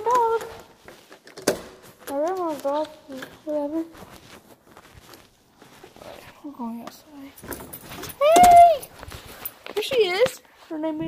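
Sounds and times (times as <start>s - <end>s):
faint footsteps: 0.0s - 11.0s
soft rustling: 0.0s - 11.0s.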